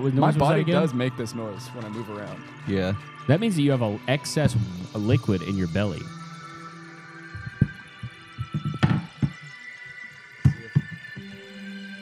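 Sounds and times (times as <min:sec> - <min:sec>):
background music: 0:00.0 - 0:12.0
thumps on microphone: 0:08.4 - 0:09.4.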